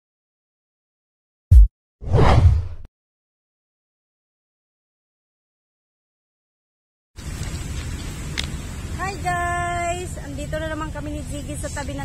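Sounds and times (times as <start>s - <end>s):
whoosh: 1.5s - 2.9s.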